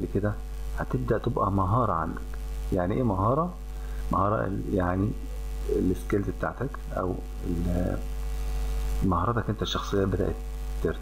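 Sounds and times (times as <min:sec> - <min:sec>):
electrical mains hum: 0:00.0 - 0:11.0
man saying eh: 0:04.1 - 0:08.0.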